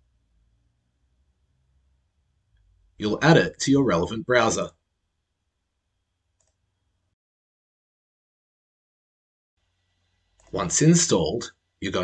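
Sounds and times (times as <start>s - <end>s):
faint click: 6.4s - 6.6s.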